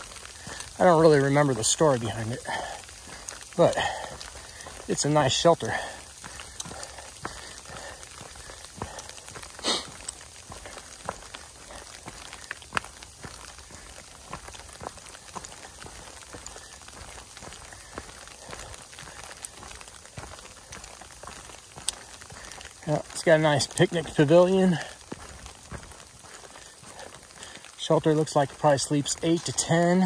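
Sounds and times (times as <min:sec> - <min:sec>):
raindrops ticking: 0:00.0 - 0:30.0.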